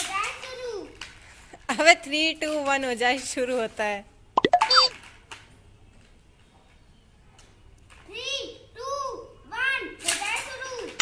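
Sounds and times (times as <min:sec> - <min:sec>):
squeak falling in pitch: 0:04.4 - 0:04.9.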